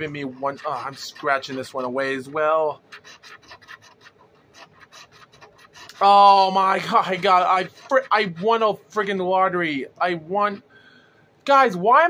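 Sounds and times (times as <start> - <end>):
lottery ticket being scratched: 0.0 - 9.6.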